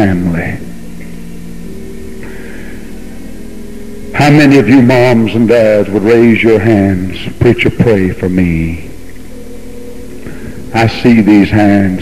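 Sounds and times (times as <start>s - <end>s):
faint sustained tones: 0.0s - 12.0s
low steady hum: 0.0s - 12.0s
tape hiss: 0.0s - 12.0s.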